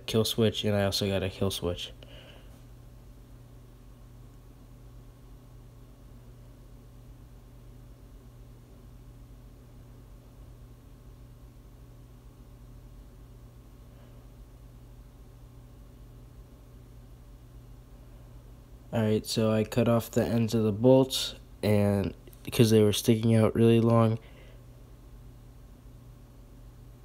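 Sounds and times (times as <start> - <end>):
low hum and hiss: 0.0 - 27.0.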